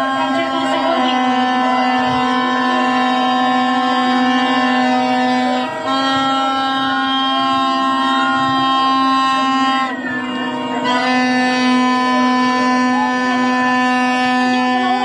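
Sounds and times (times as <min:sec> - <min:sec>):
plastic horns blowing: 0:00.0 - 0:15.0.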